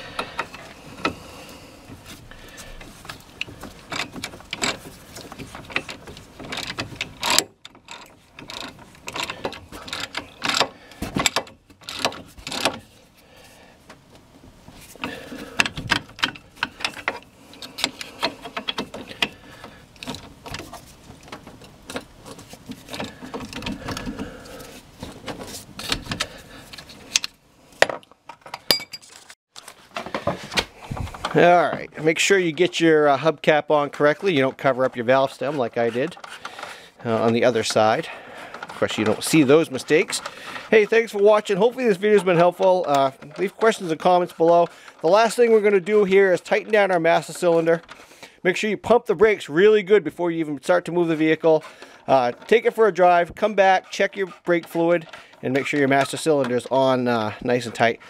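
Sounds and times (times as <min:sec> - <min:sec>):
metal tool clatter: 0:03.0 - 0:13.0, 0:14.8 - 0:29.4.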